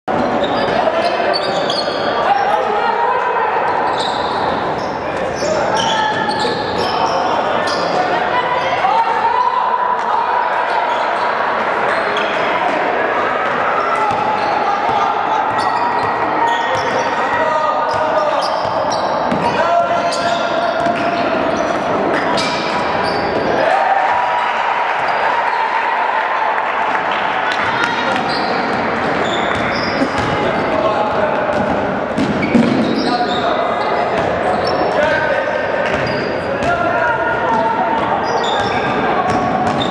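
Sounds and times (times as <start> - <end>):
indistinct shouting and talk: 0.1 - 39.9.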